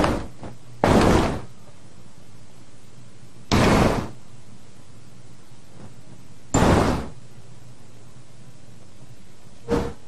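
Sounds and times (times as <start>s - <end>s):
heavy bangs: 0.0s - 1.6s, 3.5s - 4.2s, 6.5s - 7.3s.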